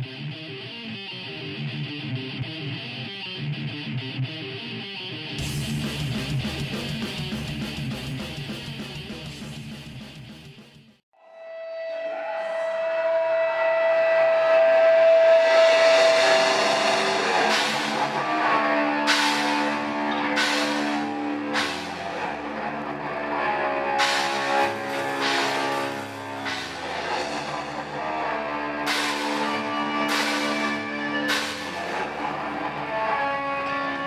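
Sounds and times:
electric guitar amp feedback: 0.0s - 10.6s, 11.2s - 34.0s
crash cymbals: 15.0s - 18.4s, 19.0s - 22.2s, 24.0s - 27.9s, 28.8s - 32.0s.

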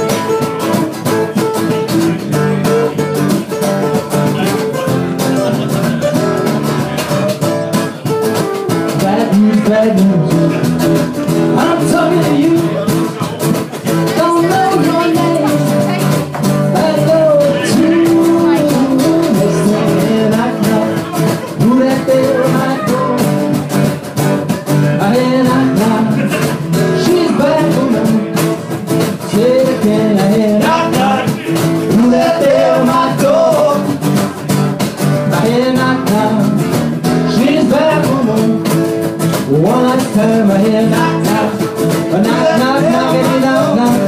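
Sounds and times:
bass: 0.0s - 44.0s
cajon beat: 0.0s - 44.0s
strummed acoustic guitars: 0.0s - 44.0s.

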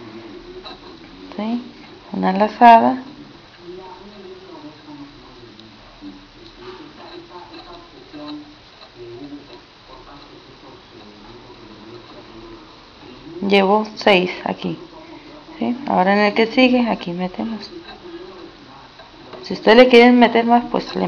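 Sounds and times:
person talking: 0.5s - 21.0s.

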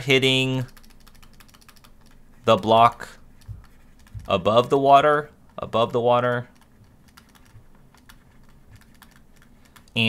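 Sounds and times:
stylus tapping on tablet screen: 3.4s - 4.4s.

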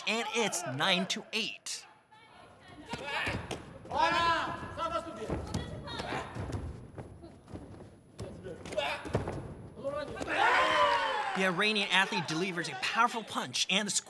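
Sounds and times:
people shouting: 0.0s - 5.1s, 10.2s - 13.1s.

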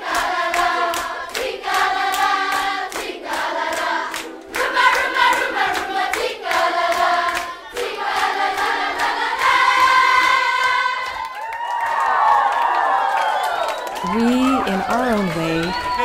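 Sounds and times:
hand clapping: 0.0s - 10.4s
children singing in unison: 0.0s - 11.2s.

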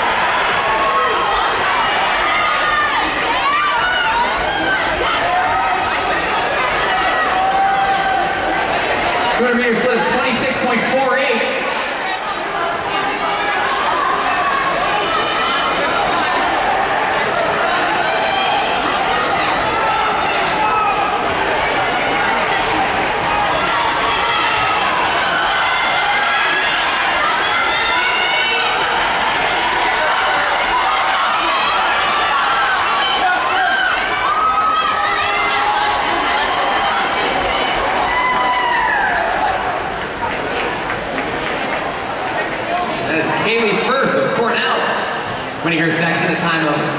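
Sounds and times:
crowd shouting and cheering: 0.0s - 46.9s.

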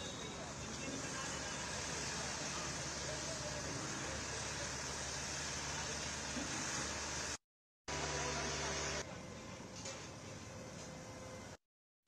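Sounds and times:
road traffic noise: 0.0s - 11.6s.

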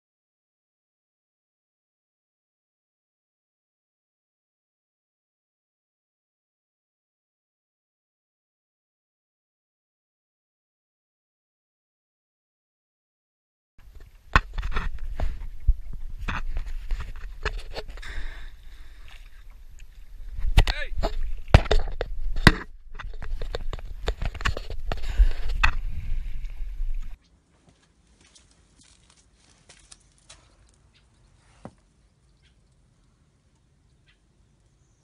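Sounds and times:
steady low rumble: 13.8s - 27.2s.

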